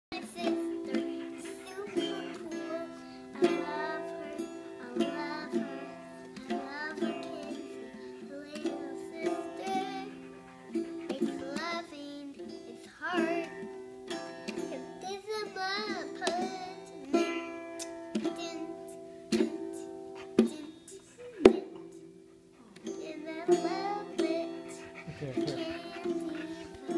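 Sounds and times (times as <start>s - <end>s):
girl singing: 0.1s - 22.1s, 22.8s - 26.9s
toy guitar strumming: 0.2s - 26.9s.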